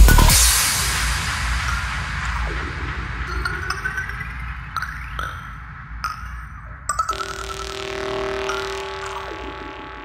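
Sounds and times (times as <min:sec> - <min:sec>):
synthesizer drone: 0:00.9 - 0:10.0.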